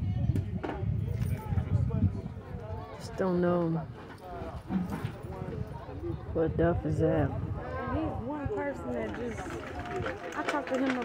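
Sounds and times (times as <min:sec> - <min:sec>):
indistinct voices talking quietly: 0:00.0 - 0:11.0.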